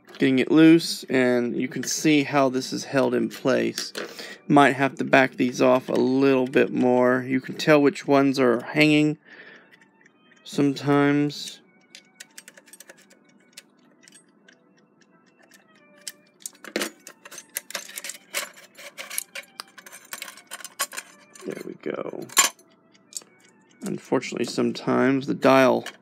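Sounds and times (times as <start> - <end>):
faint background music: 0.0 - 26.0
metallic clicks of alarm clock: 11.8 - 16.6.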